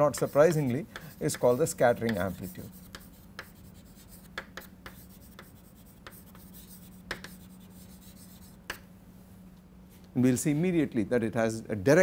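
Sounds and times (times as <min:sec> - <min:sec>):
chalk scratching on blackboard: 0:00.0 - 0:08.8
faint hum: 0:00.0 - 0:12.0.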